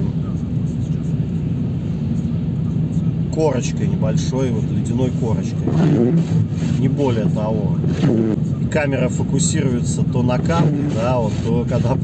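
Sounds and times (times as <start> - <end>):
car engine and tyre noise: 0.0 - 12.0.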